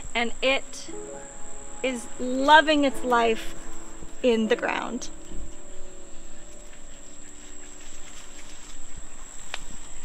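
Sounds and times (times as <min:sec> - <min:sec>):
faint low hum: 0:00.0 - 0:10.0
insects trilling: 0:00.0 - 0:10.0.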